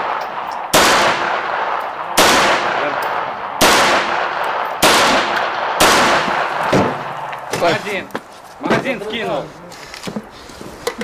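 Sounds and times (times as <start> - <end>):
pistol shots echoing: 0.0 - 7.5.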